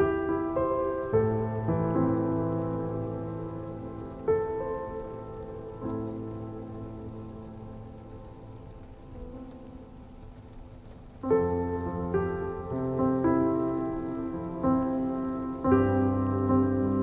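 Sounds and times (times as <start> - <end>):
slow piano chords: 0.0 - 17.0
soft rain patter: 0.0 - 17.0.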